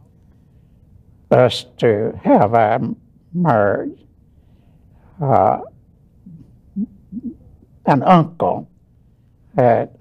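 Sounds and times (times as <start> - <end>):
elderly man speaking: 1.3 - 4.0, 5.2 - 5.7, 7.8 - 8.7, 9.6 - 10.0
elderly man humming and murmuring: 5.2 - 7.5.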